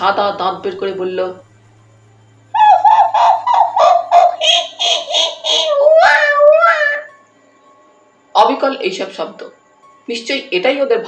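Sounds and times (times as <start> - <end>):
high-pitched chattering voice: 2.6 - 7.1.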